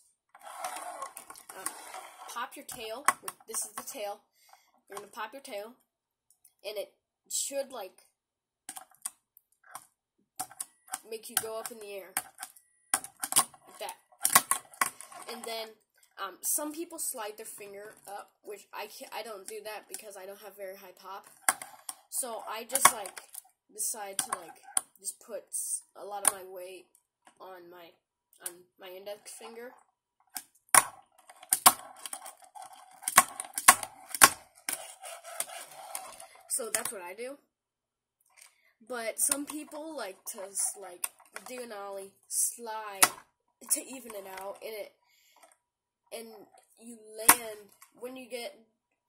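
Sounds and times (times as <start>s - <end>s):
small wheels rolling on table: 0.3s - 2.4s, 30.8s - 36.6s.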